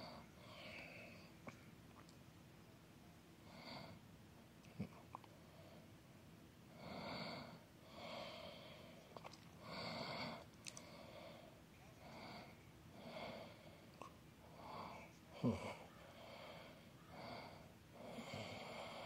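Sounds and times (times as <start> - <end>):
person breathing: 0.0 - 1.4, 6.8 - 19.0
person sighing: 15.4 - 16.0.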